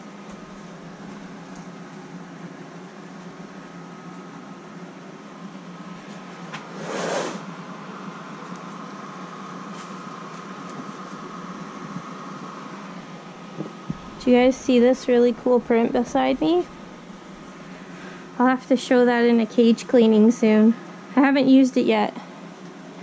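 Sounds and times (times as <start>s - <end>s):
mechanical hum: 0.0s - 23.0s.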